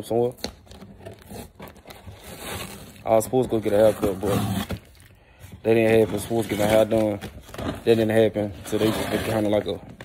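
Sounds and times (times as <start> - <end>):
tearing cardboard and tape: 0.4 - 5.1, 5.8 - 9.8.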